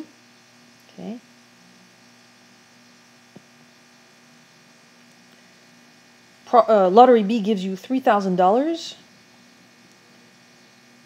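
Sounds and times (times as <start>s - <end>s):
electrical hum: 0.0s - 11.0s.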